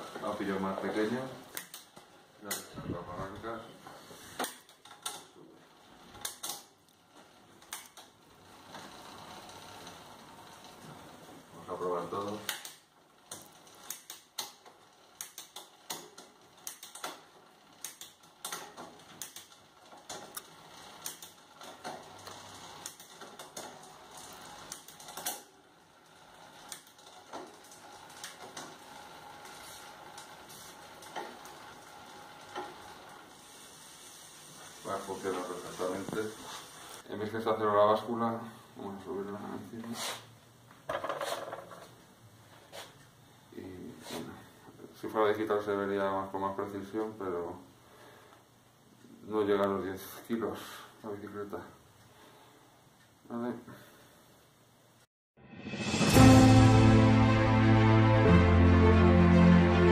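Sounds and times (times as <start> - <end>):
bike chain running over cassette: 8.4 - 10.7, 14.7 - 34.0.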